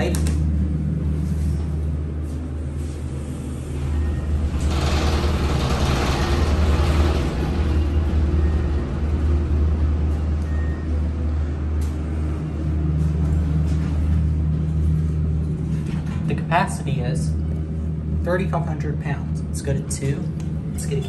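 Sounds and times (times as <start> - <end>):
elevator car rumbling: 0.0 - 21.0.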